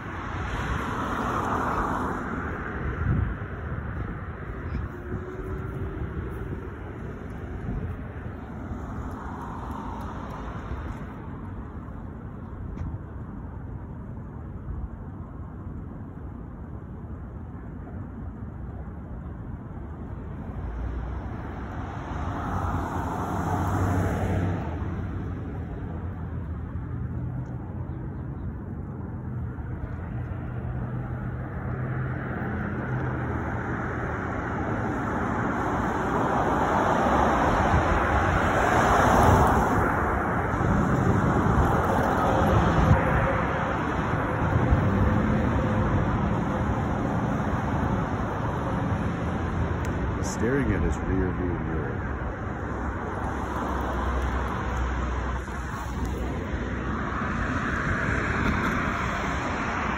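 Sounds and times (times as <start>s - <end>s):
cars driving past: 0.0s - 13.7s, 19.7s - 59.9s.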